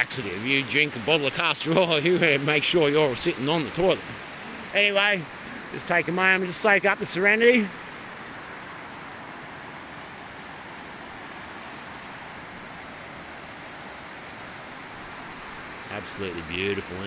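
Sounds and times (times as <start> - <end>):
creek rushing over rocks: 0.0 - 17.0.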